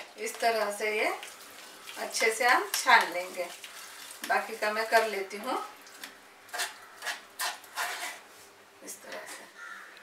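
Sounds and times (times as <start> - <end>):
spatula scraping metal mesh strainer: 6.5 - 8.2.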